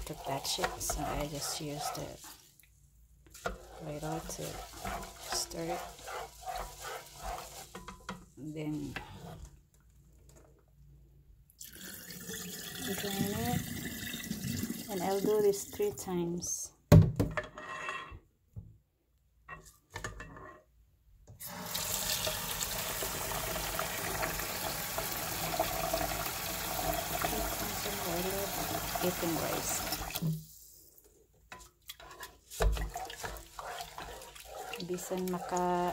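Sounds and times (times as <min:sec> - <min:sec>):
paddle swishing rice in water: 0:00.0 - 0:02.6, 0:03.3 - 0:07.8, 0:31.9 - 0:35.9
tap water running into pot: 0:11.6 - 0:15.4, 0:21.4 - 0:30.4.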